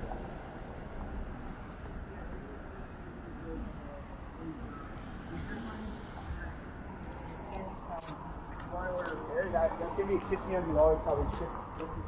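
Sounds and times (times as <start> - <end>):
city traffic rumble: 0.0 - 12.0
passersby talking: 0.0 - 12.0.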